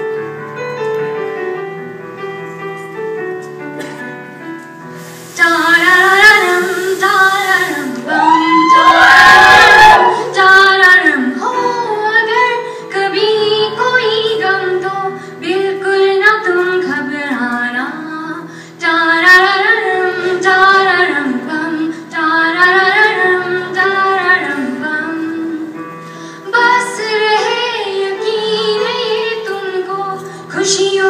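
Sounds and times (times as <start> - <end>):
brief loud hiss: 3.8 - 10.4
woman singing into a microphone: 5.4 - 31.0.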